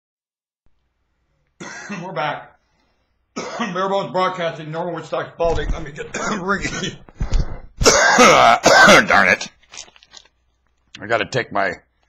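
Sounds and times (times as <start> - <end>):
room noise: 0.7 - 11.0
man coughing: 1.6 - 2.2, 3.4 - 3.8, 6.0 - 9.3.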